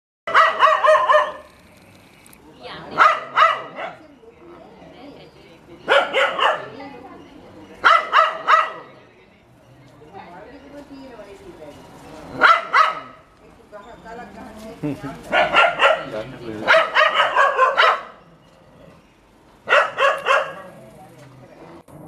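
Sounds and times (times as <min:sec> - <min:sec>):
dog barking: 0:00.3 - 0:01.5, 0:02.9 - 0:04.1, 0:05.8 - 0:06.8, 0:07.8 - 0:08.9, 0:12.4 - 0:13.2, 0:15.3 - 0:18.2, 0:19.6 - 0:20.8.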